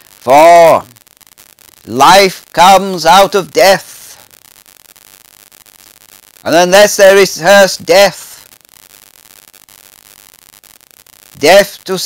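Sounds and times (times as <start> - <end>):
microphone and room hiss: 0.0 - 12.0.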